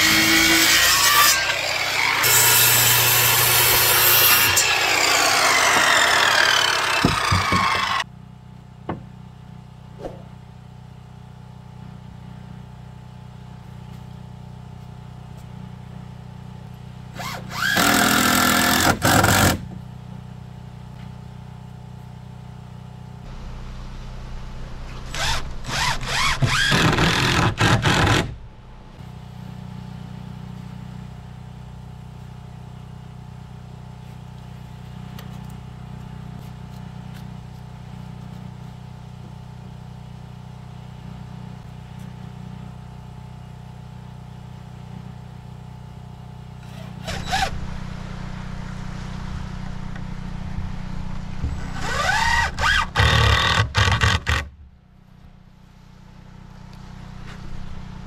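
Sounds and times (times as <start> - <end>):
circular saw winding down: 0.0 - 8.0, 25.0 - 28.2, 51.6 - 53.6.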